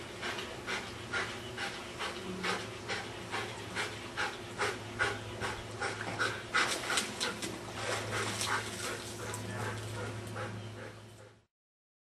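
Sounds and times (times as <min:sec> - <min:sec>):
dog panting hard: 0:00.0 - 0:11.5
steady low hum: 0:00.0 - 0:11.5.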